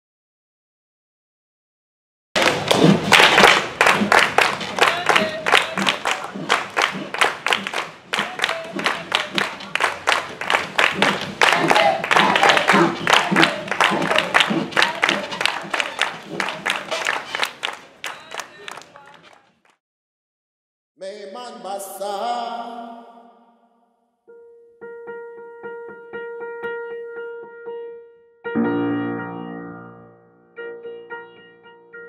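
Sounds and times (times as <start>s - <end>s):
rhythmic hand clapping: 2.4s - 19.8s
children singing or chanting: 11.4s - 16.8s.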